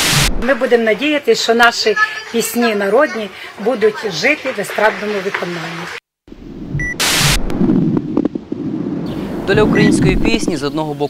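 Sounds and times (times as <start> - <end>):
loud hissing burst: 0.0 - 0.5, 9.0 - 10.6
low rumbling noise: 6.3 - 10.7.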